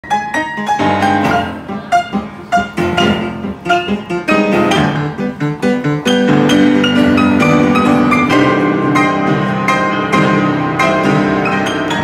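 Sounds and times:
upright piano played four hands: 0:00.0 - 0:12.0.

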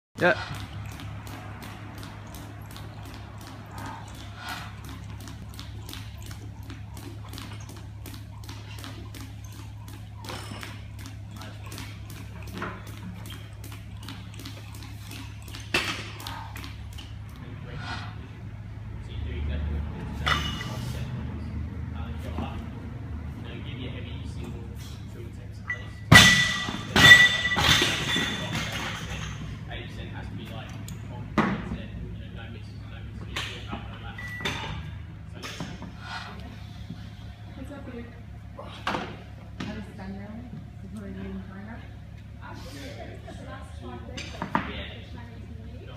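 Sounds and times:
steady low hum: 0:00.2 - 0:45.9.

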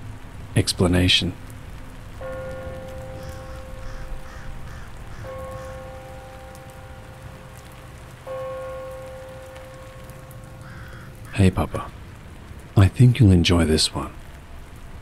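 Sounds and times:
steady rain: 0:00.0 - 0:15.0.

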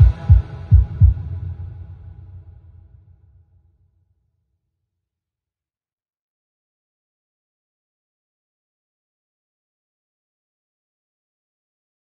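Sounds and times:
heartbeat double thumps: 0:00.0 - 0:02.5
low hum: 0:00.0 - 0:03.3.

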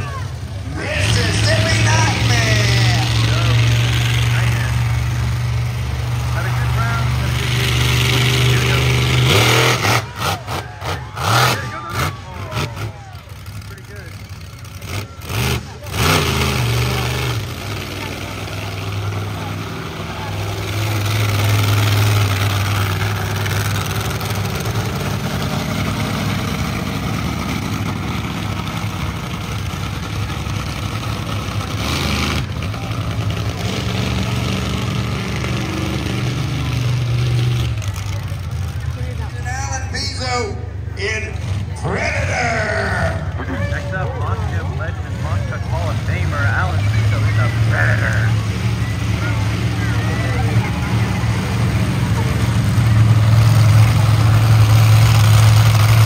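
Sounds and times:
truck engine revving: 0:00.0 - 0:56.0.

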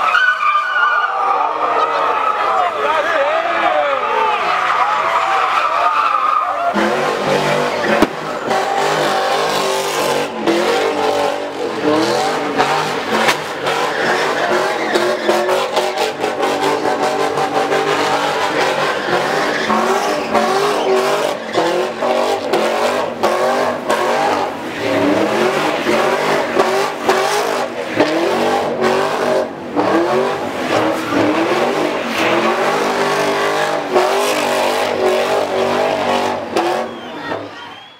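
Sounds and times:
tires squealing: 0:00.0 - 0:37.9
car engine revving hard: 0:06.7 - 0:37.1.

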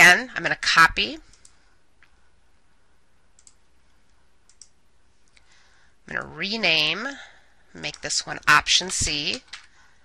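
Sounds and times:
steady low hum: 0:00.0 - 0:10.0
faint computer mouse clicks: 0:03.4 - 0:03.6, 0:04.5 - 0:05.5.

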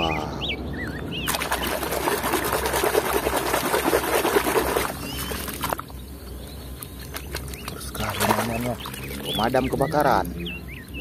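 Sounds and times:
splashing of muddy water: 0:01.3 - 0:05.9, 0:07.0 - 0:09.4.

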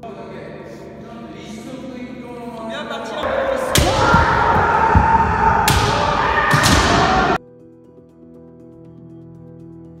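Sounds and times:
people shouting: 0:03.2 - 0:07.4.

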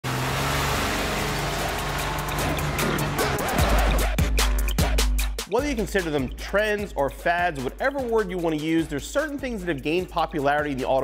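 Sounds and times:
car engine and road drone: 0:00.0 - 0:04.2
music with deep bass beat: 0:01.4 - 0:11.0.

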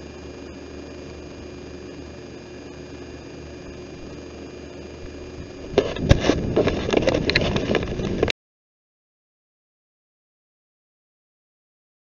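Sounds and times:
camera handling noise: 0:05.7 - 0:08.3.

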